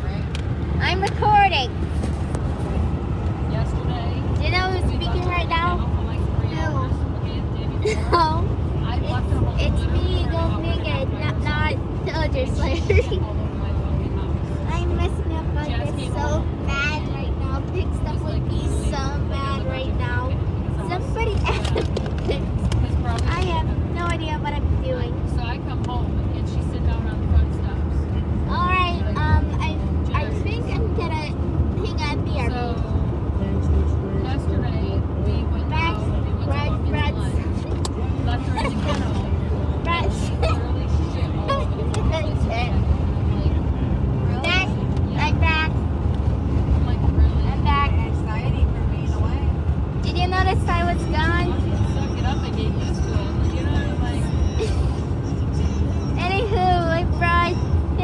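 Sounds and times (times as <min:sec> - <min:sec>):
car cabin road noise: 0:00.0 - 0:58.0
voices talking: 0:00.0 - 0:58.0.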